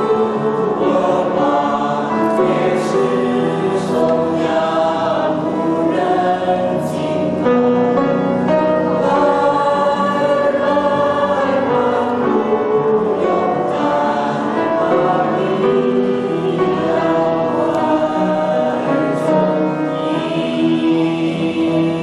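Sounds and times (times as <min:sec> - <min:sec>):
choir singing sustained notes: 0:00.0 - 0:22.0.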